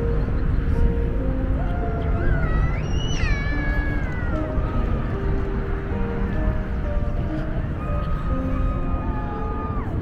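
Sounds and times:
low rumble of wind: 0.0s - 10.0s
soft background music: 0.0s - 10.0s
meow-like call: 1.6s - 4.6s, 8.5s - 10.0s.

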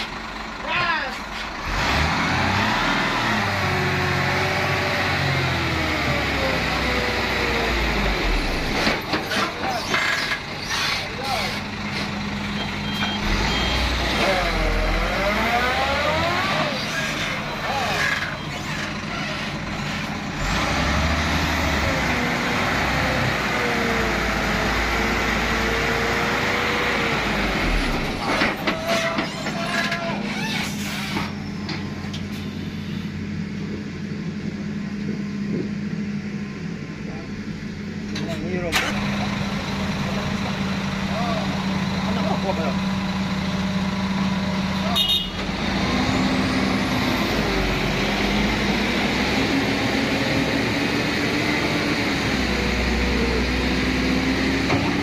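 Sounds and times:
truck diesel engine revving hard: 1.5s - 9.1s, 13.0s - 28.4s, 38.9s - 55.0s.

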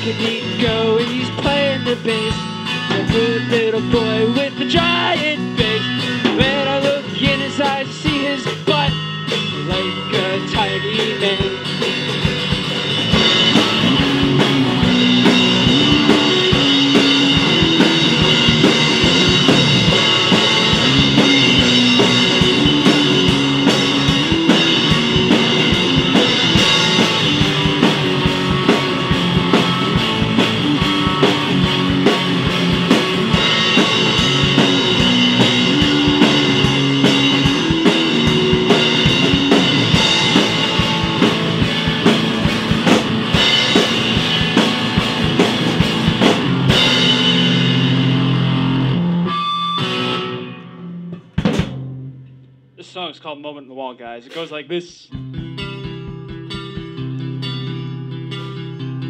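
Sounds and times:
drum kit beat: 0.0s - 49.0s, 50.9s - 58.6s
bass guitar line: 0.0s - 59.0s
guitar: 0.0s - 59.0s.

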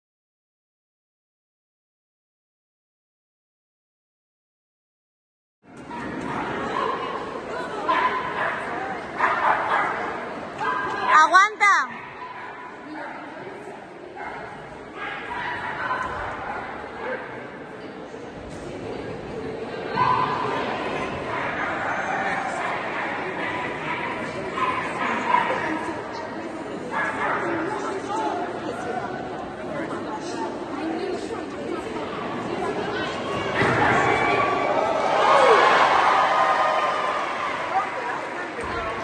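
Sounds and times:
murmur of a crowd: 5.6s - 39.0s
dog barking: 7.9s - 10.1s.

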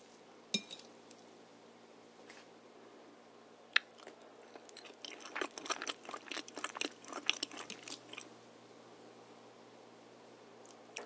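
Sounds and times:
close-miked chewing: 3.8s - 8.3s.

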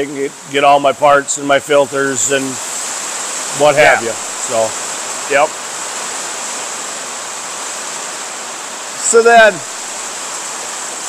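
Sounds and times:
faint high whine: 0.0s - 6.3s
steady hiss: 0.0s - 11.0s
person saying a word: 3.6s - 4.6s.

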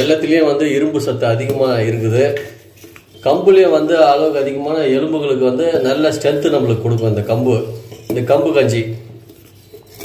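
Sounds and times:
man speaking: 0.0s - 2.6s, 3.2s - 9.2s
metal ladle scraping steel pot: 5.7s - 10.0s.

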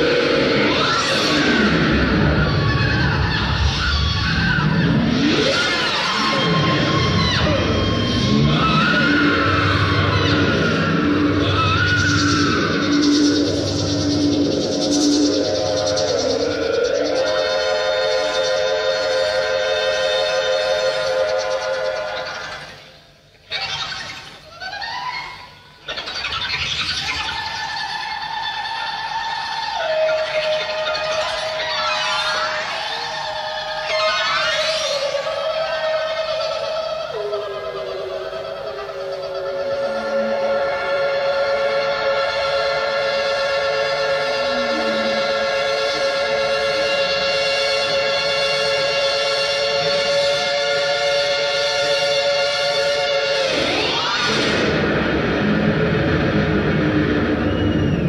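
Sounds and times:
electric guitar with delay echoes: 53.4s - 58.0s.

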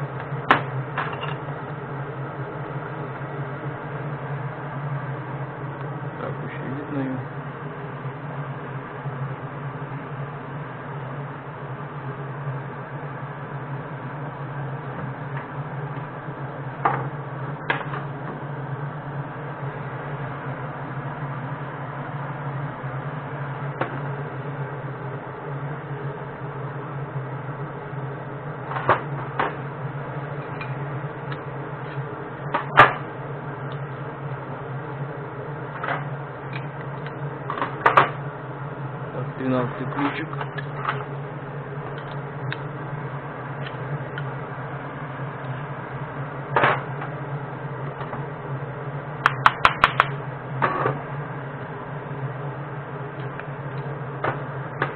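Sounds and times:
low machine hum: 0.0s - 54.9s.

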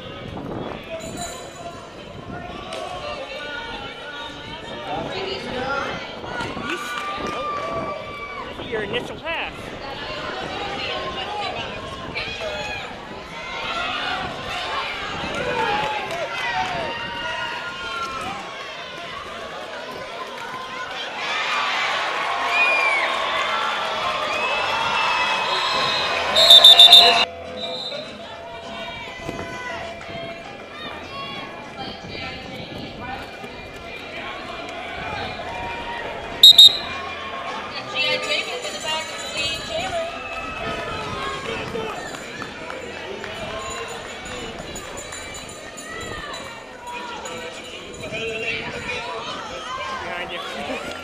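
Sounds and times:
crowd shouting and cheering: 1.9s - 27.3s
referee's whistle blasts: 26.4s - 28.0s, 36.4s - 37.0s.

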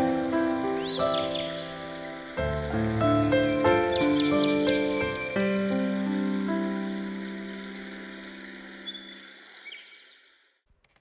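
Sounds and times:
piano chord: 0.0s - 9.2s
forest ambience hiss: 0.0s - 10.6s
short bird chirps: 8.8s - 10.4s.

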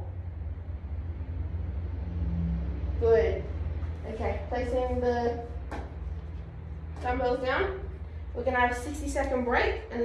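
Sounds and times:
faint hum: 0.0s - 10.0s
low rumble: 0.0s - 10.0s.

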